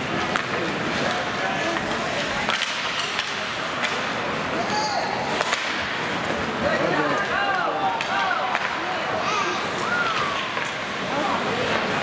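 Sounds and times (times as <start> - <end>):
stick cracking on puck: 1.7 - 4.1, 5.4 - 5.9.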